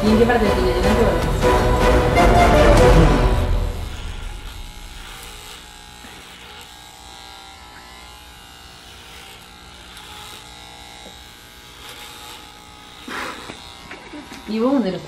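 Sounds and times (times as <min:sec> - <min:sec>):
electric hair clippers buzzing: 0:00.0 - 0:15.0.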